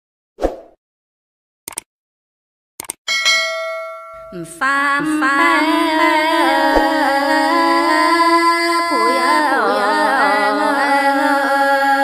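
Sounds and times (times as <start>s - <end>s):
short clicks: 1.7s - 1.9s, 2.8s - 3.0s
bell-like chime ringing: 3.1s - 4.5s.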